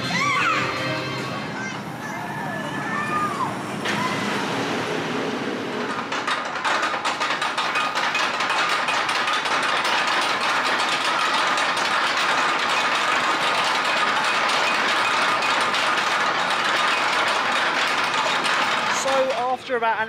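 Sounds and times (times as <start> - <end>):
lift chain clatter: 5.7 - 19.5.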